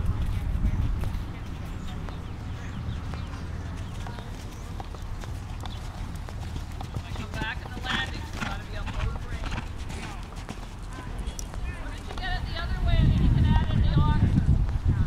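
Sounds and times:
horse hoofbeats on sand: 0.0 - 14.1
voices talking: 0.0 - 15.0.

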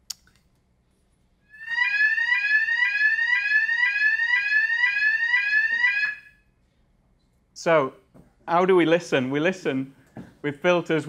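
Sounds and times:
fire alarm sweeping tone: 1.5 - 6.5.

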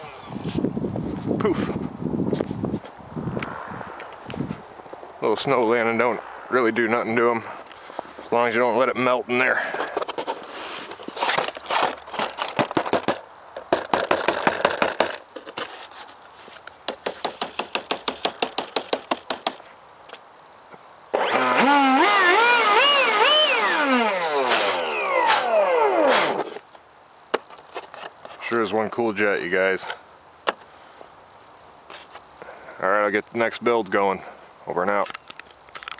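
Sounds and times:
crunching and rustling handling: 9.2 - 18.3
electric ducted fan whirring: 21.1 - 26.6.

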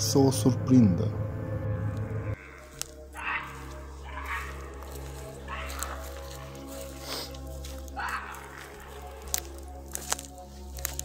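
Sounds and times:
hoarse animal-like calls: 2.2 - 9.7.

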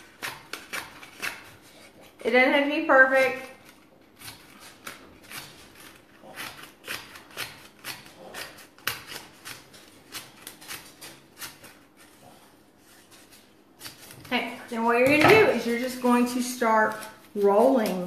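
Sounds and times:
scissors snipping paper: 0.0 - 2.2, 3.2 - 12.2, 12.9 - 18.0.

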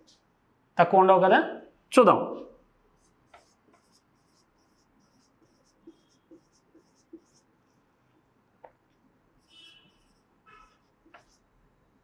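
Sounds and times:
person speaking: 0.8 - 2.6
marker squeaking on whiteboard: 3.0 - 7.8, 9.4 - 11.5.

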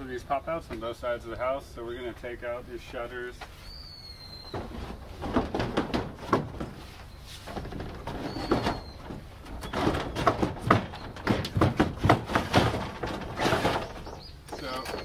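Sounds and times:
wooden shutters knocking and rattling: 4.4 - 6.9, 7.5 - 15.0.

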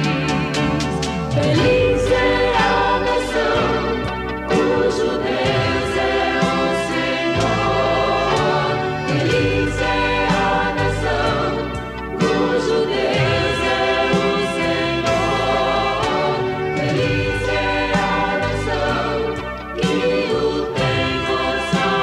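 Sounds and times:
backing voices: 0.0 - 22.0
instrumental accompaniment: 0.0 - 22.0.

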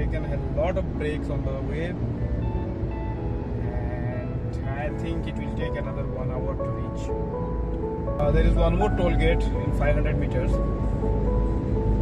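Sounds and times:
background music: 0.0 - 12.0
car road and engine noise: 0.0 - 12.0
man's voice: 3.6 - 7.1, 8.2 - 10.6.

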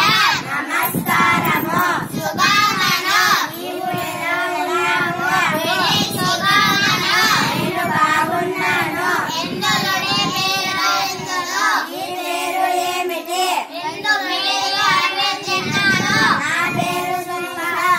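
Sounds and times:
children singing together: 0.0 - 17.9.

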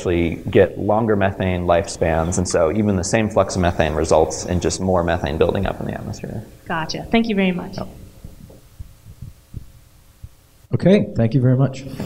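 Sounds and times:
low room hum: 0.0 - 12.0
soft low thumps: 6.7 - 10.7.

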